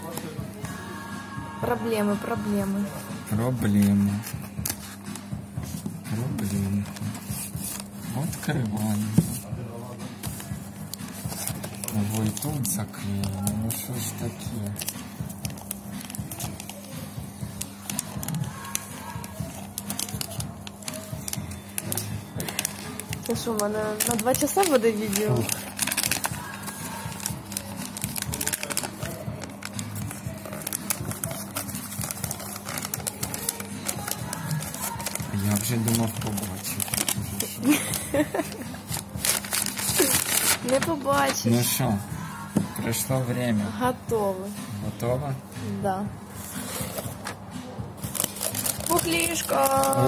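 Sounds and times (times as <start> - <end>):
music playing: 0.0 - 50.0
wrapping paper rustling and crackling: 3.3 - 9.5, 10.2 - 42.1, 48.0 - 50.0.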